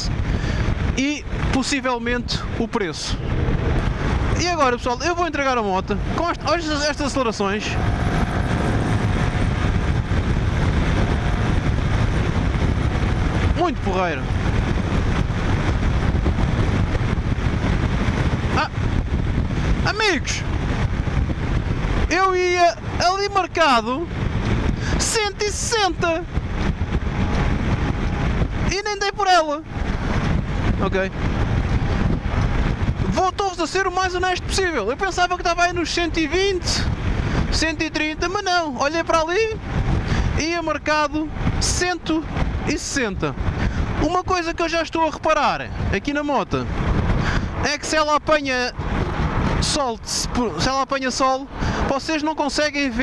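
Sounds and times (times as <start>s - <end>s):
wind and road noise: 0.0s - 53.0s
scooter engine at speed: 7.5s - 19.8s.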